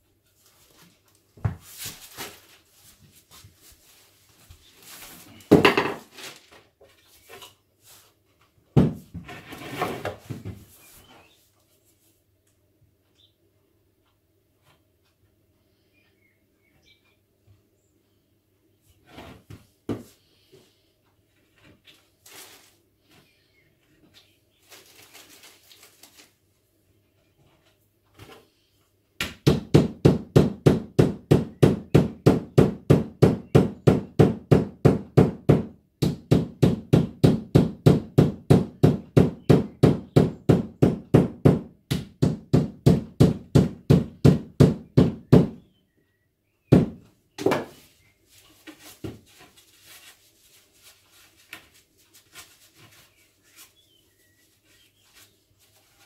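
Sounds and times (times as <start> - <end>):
handling of wood: 47.4 - 56.0.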